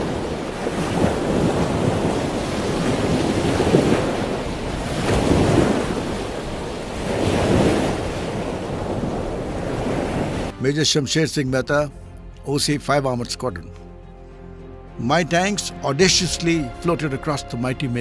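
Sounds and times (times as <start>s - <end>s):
rushing water and waves: 0.0s - 18.0s
wind: 0.0s - 18.0s.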